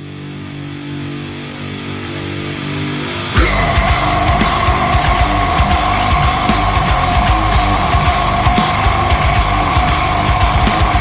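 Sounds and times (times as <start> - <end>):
distorted guitar chord droning: 0.0 - 11.0.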